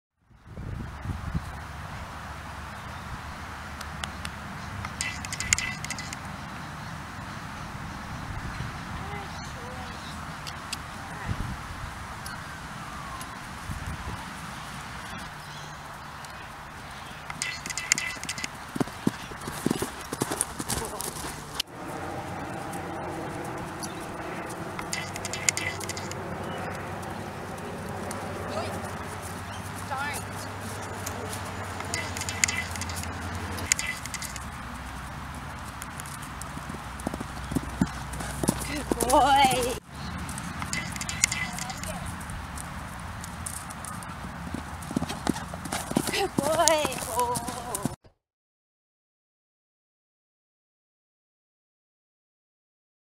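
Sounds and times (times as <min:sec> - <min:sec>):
hooves cantering on grass: 0:01.1 - 0:11.2, 0:12.8 - 0:48.0.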